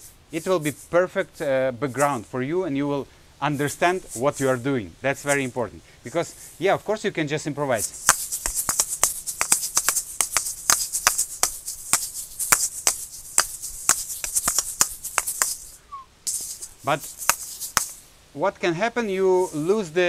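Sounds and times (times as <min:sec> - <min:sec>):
seeds rattling: 0:07.7 - 0:18.1
asalato balls clicking: 0:07.8 - 0:18.0.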